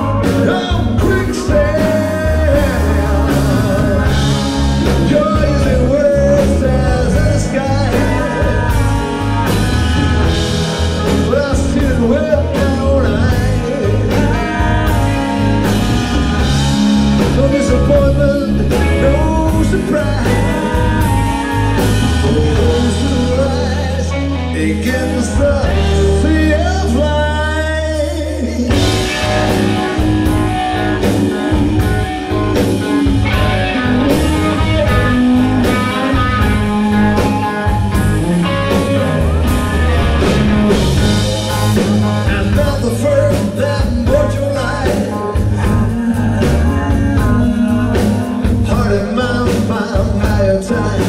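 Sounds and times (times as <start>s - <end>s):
live rock band playing: 0.0s - 51.0s.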